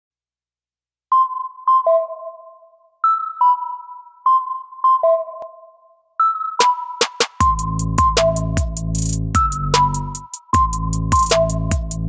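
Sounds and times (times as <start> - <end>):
slow synthesizer melody: 1.2 - 12.0.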